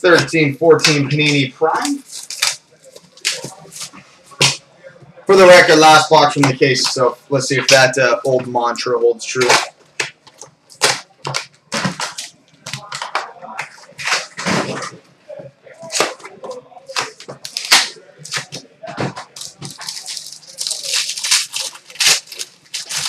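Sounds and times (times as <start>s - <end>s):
foil wrapper crinkling: 1.3s - 3.9s, 15.9s - 18.6s, 19.2s - 23.0s
foil tearing: 1.8s - 3.9s, 19.3s - 23.0s.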